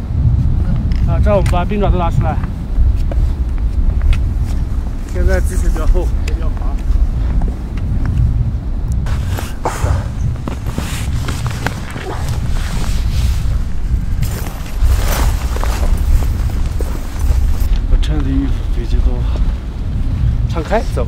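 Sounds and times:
steady low rumble: 0:00.0 - 0:21.0
boots crunching through snow: 0:09.1 - 0:17.7.

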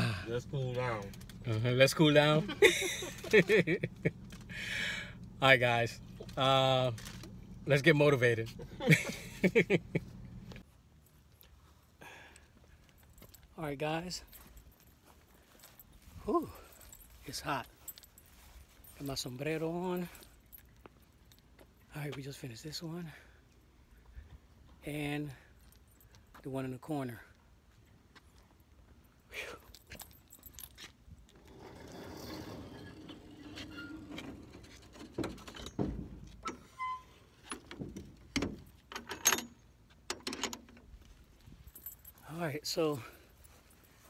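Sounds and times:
faint light clicks and clinks: 0:00.8 - 0:01.7, 0:28.2 - 0:31.0.

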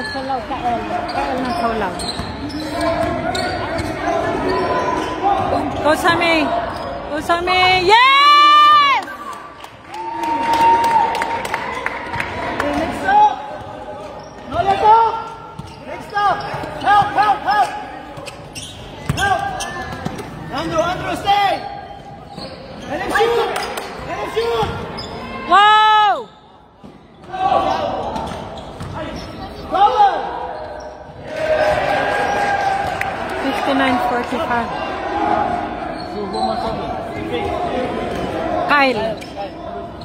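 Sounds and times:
sneakers squeaking on gym floor: 0:00.0 - 0:07.8, 0:13.6 - 0:25.6, 0:26.2 - 0:29.8, 0:30.4 - 0:31.8, 0:35.9 - 0:37.6, 0:38.7 - 0:40.0.

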